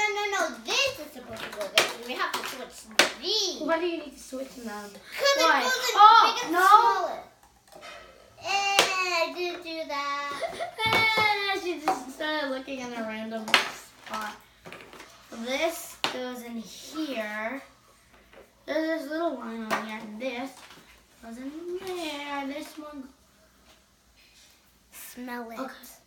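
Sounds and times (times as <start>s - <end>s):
children's voices: 0.0s - 7.4s, 8.4s - 14.4s.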